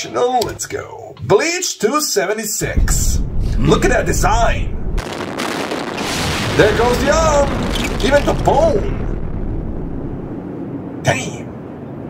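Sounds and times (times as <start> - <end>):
low soundtrack rumble: 2.6 - 12.0.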